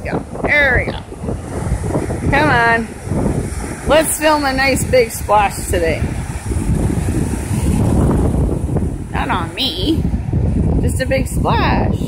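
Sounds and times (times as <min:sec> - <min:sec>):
waves breaking on rocky shore: 0:00.0 - 0:12.0
wind buffeting microphone: 0:00.0 - 0:12.0.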